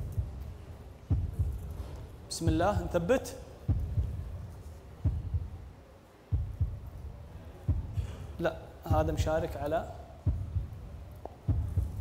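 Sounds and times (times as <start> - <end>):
dull low thumps: 0.0 - 1.9, 2.5 - 3.0, 3.6 - 5.7, 6.3 - 9.4, 10.2 - 12.0
faint hum: 0.0 - 12.0.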